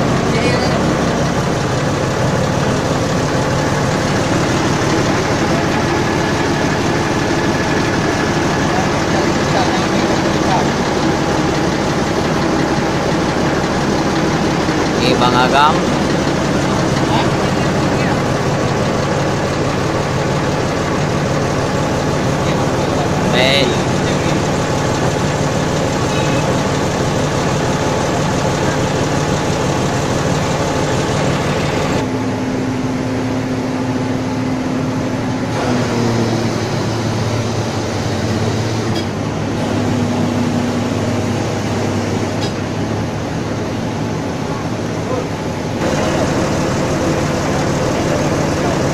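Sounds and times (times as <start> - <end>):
crane engine running: 0.0 - 48.9.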